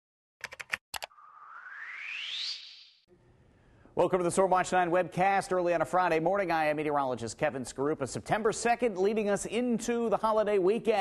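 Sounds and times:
rising whoosh: 1.2 - 3.1.

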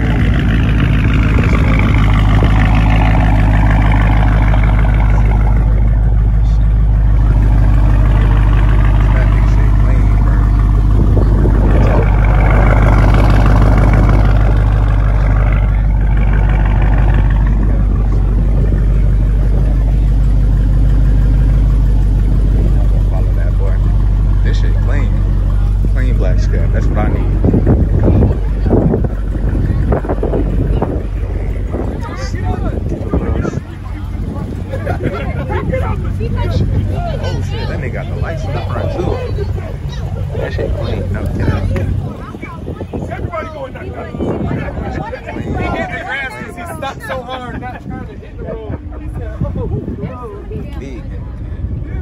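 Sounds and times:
car engine idling: 0.0 - 52.0.

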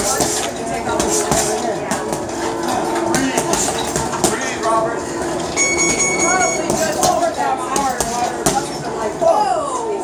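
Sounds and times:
people talking: 0.0 - 10.0
steady high-pitched tone: 4.8 - 7.0.

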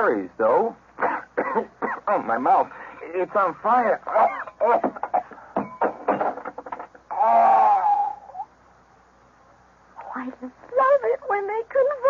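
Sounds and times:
man moaning: 7.1 - 8.5.

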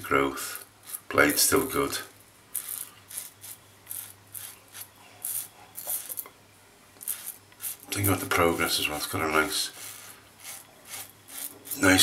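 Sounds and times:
razor scraping stubble: 0.8 - 1.1, 2.5 - 6.3, 7.0 - 8.2, 9.2 - 12.0.

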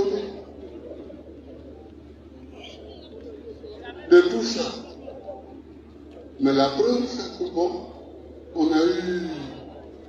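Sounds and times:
faint background noise: 0.0 - 10.0
steady low hum: 0.0 - 10.0.

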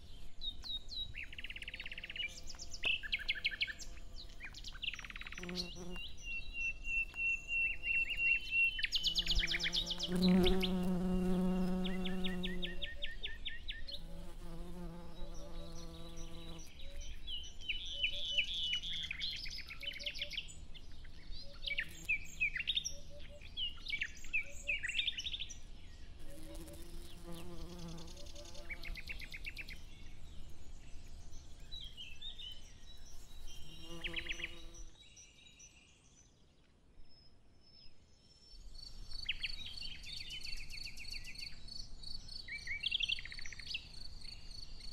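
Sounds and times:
insect buzzing: 5.1 - 6.1, 9.0 - 13.0, 13.9 - 16.7, 26.2 - 29.6, 33.2 - 34.9.

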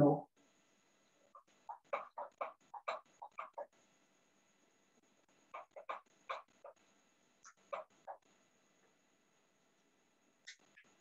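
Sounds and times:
faint clipped animal calls: 1.3 - 3.8, 5.5 - 6.8, 7.4 - 8.3.

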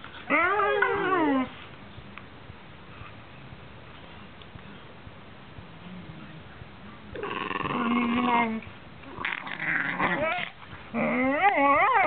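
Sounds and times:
dog whining and growling: 0.2 - 1.6, 7.2 - 12.0.

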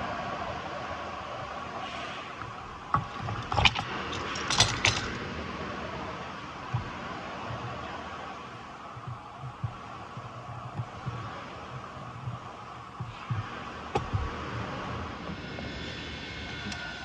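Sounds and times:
hand tool clacks: 3.0 - 5.2.

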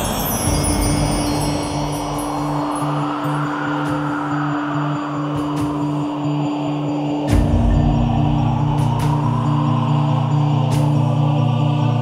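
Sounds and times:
wind-chime shimmer: 0.0 - 5.4
held drone: 0.0 - 12.0.

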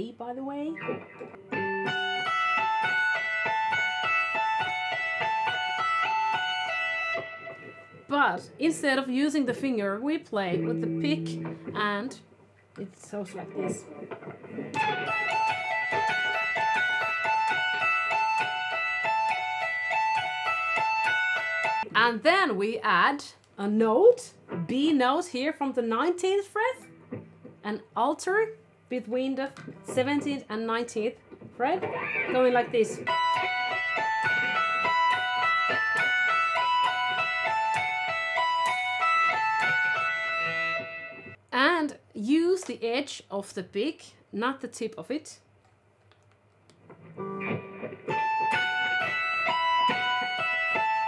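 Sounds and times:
electric guitar tapped phrase: 13.4 - 21.2, 29.4 - 30.5, 31.5 - 41.4.

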